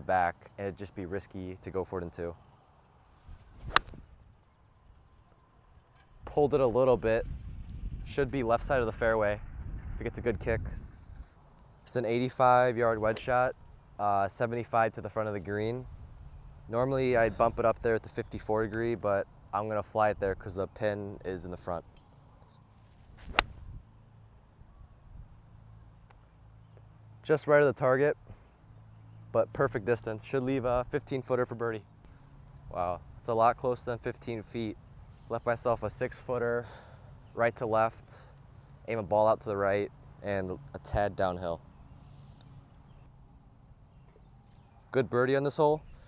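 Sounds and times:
golf club swish: 0:03.3 - 0:04.0, 0:22.8 - 0:23.8
golf ball impact crack: 0:03.6 - 0:04.0, 0:23.2 - 0:23.7.

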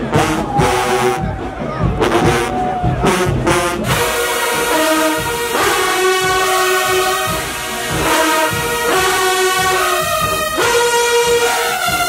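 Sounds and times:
brass section holding a chord: 0:00.0 - 0:01.4, 0:02.0 - 0:12.0.

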